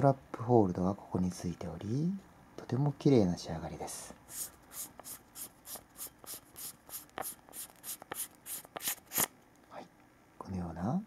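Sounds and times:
threads rasping while unscrewing: 4.3 - 9.3.

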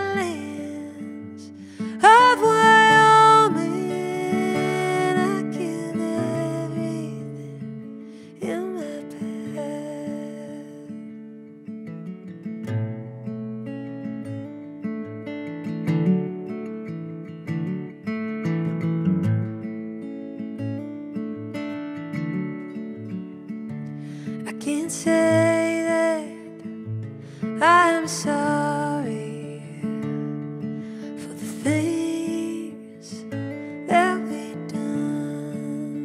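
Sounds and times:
acoustic guitar picking: 0.0 - 36.0.

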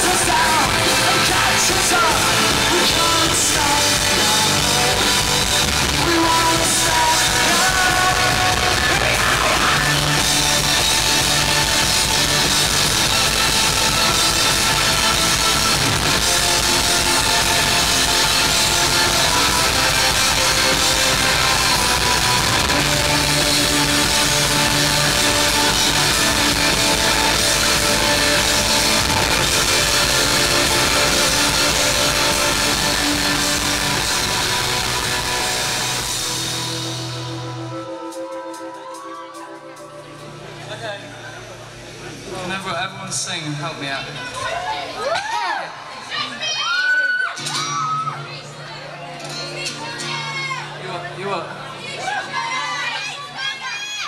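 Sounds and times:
electric guitar: 0.0 - 42.3
rock band playing: 0.0 - 45.1.

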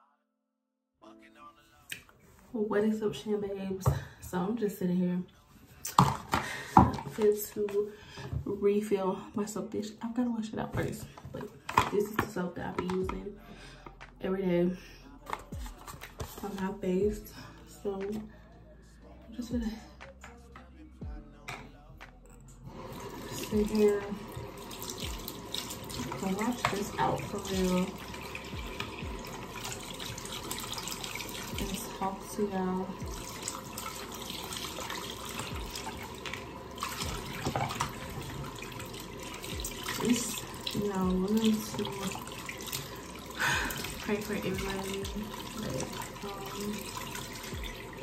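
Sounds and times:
tap water running into sink: 5.9 - 8.4, 10.8 - 13.2, 22.8 - 48.0
soap dish being rinsed: 22.8 - 48.0.

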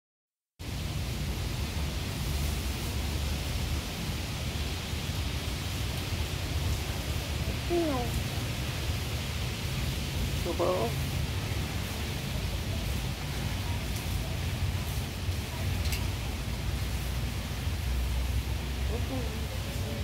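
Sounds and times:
steady background hiss: 0.6 - 20.0.

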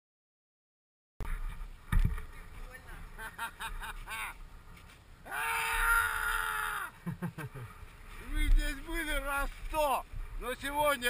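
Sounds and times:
person shouting long: 5.2 - 7.0.

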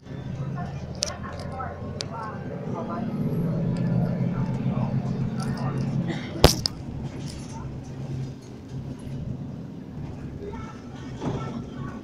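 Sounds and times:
people talking: 0.0 - 8.4, 10.0 - 12.0
bus engine running: 0.0 - 12.0.

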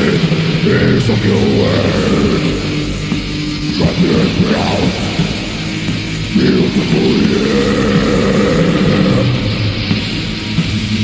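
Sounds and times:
metal music with distorted guitars: 0.0 - 11.0.

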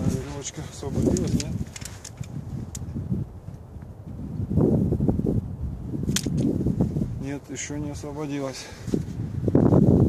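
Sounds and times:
climbing gear rustling and clicking: 0.0 - 2.8
wind buffeting microphone: 0.0 - 10.0.

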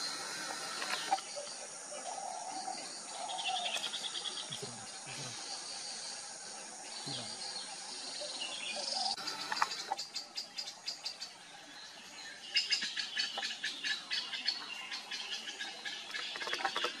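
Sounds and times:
birds chipping and chattering: 0.0 - 17.0.

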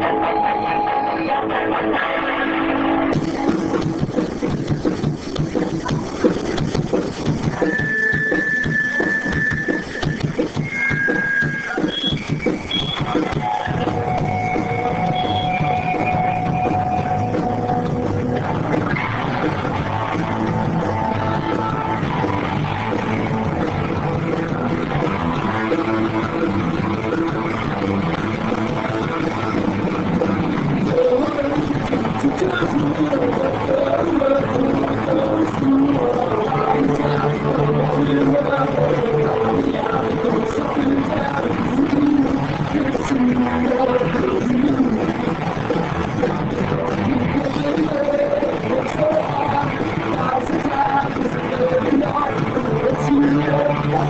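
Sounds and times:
rock band playing live: 0.0 - 54.0
strummed electric guitar chords: 0.0 - 54.0
irregular drum hits and clatter: 3.1 - 54.0
steady high tone: 7.6 - 18.4.

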